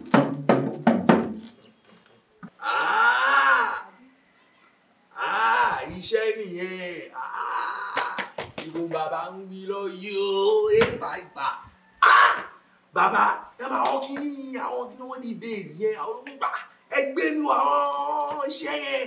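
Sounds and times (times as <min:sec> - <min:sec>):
man crying out: 0:02.6 - 0:03.9, 0:05.1 - 0:08.4.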